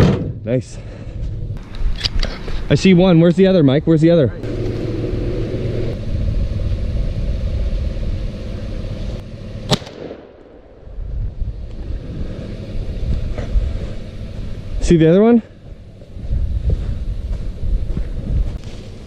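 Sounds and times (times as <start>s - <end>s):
wind rumble on microphone: 5.1s - 8.8s, 10.8s - 14.8s, 15.6s - 19.0s
shotgun shot: 9.7s - 10.6s.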